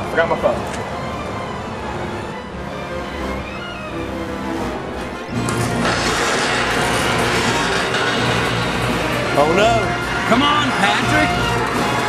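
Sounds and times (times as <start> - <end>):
music: 0.0 - 12.0
garage door opener rumbling: 0.6 - 12.0.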